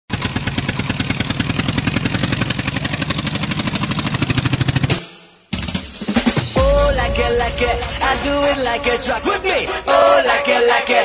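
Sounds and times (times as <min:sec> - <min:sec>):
tractor engine chugging: 0:00.1 - 0:05.0.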